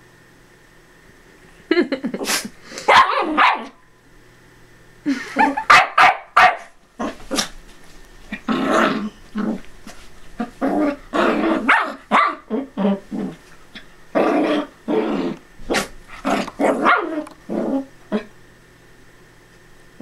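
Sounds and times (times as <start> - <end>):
small dogs barking and growling: 2.2 - 3.8, 5.2 - 7.6, 8.2 - 18.4.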